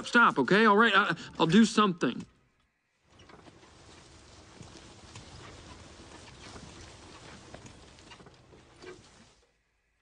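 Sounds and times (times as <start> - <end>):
soft knocks and rustles: 3.1 - 9.6.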